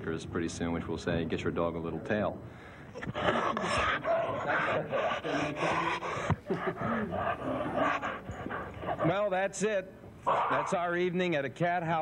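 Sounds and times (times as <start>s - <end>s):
dog whining: 3.0s - 9.2s
dogs panting: 3.0s - 9.4s.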